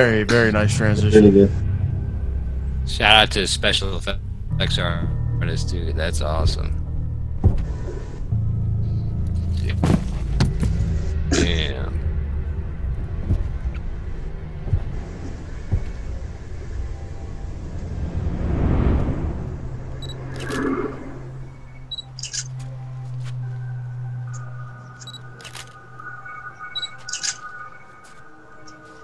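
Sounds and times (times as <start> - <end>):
low rumble: 0.0 - 28.6
higher sustained notes: 15.4 - 29.0
whoosh: 17.1 - 21.8
scattered clicks: 26.8 - 27.5.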